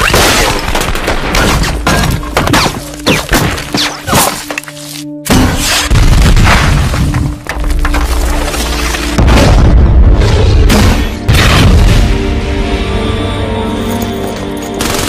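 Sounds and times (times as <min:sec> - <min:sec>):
action film score music: 0:00.0 - 0:15.0
loud booms and crashes: 0:09.2 - 0:12.6.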